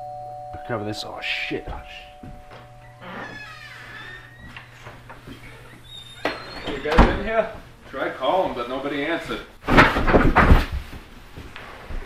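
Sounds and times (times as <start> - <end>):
steady low hum: 0.0 - 6.2
footsteps: 1.4 - 8.8
door opening: 1.5 - 7.6.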